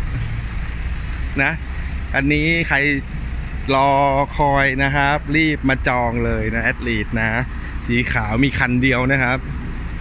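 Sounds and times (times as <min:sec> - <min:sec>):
vehicle engines rumbling: 0:00.0 - 0:10.0
man talking: 0:01.3 - 0:09.5.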